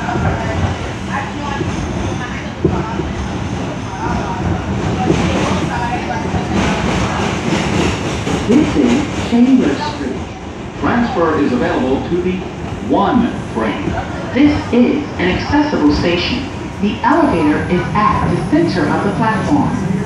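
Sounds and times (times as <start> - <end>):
subway car wheels rumbling: 0.0 - 20.0.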